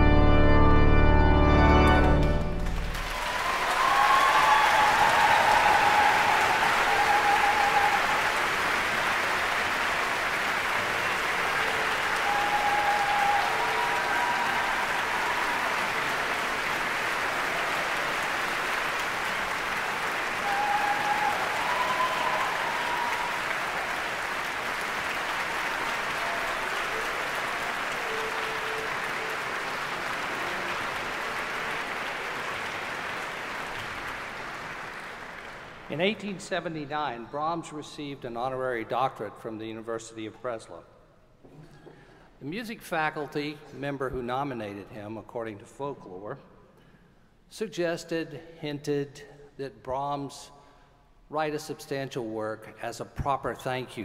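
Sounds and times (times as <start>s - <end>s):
large audience applauding: 1.5s - 36.4s.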